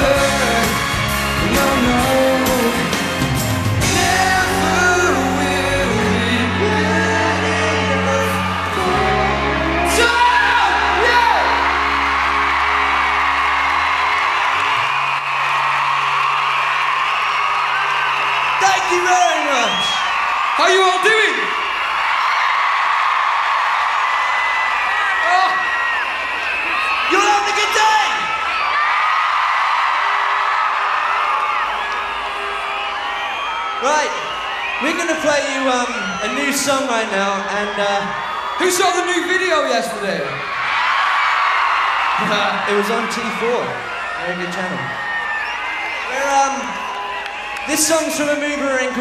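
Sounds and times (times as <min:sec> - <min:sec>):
rock band guitar and bass chords: 0:00.0 - 0:13.7
crowd screaming and cheering: 0:00.0 - 0:49.0.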